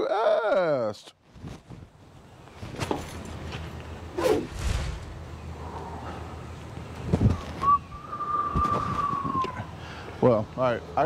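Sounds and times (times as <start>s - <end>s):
long whistled note: 7.6s - 9.6s.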